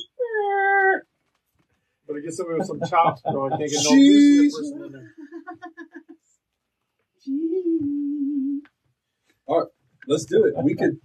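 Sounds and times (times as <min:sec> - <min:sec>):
soft laughter: 0:02.4 - 0:06.2.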